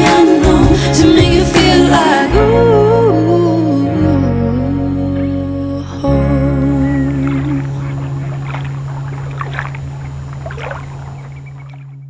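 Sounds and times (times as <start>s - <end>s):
water sloshing and splashing: 7.0s - 12.0s.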